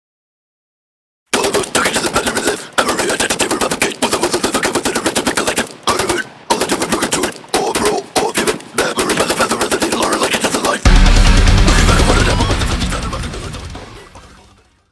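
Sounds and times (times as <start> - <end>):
death metal vocalist rapid syllables: 1.3 - 14.6
heavy metal music with deep bass: 10.9 - 14.7.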